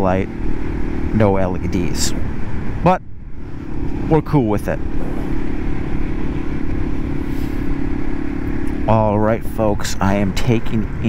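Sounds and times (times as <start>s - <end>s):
motorcycle engine cruising: 0.0s - 11.0s
road and wind noise: 0.0s - 11.0s.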